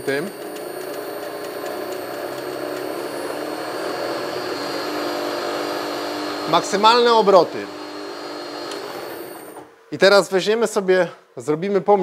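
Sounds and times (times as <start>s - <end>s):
drill press motor hum and whine: 0.0s - 9.7s.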